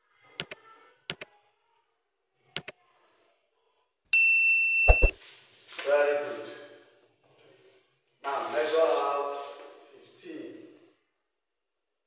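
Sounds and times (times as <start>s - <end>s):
mouse clicks: 0.4s - 1.3s
electronic notification ding: 4.7s - 5.1s.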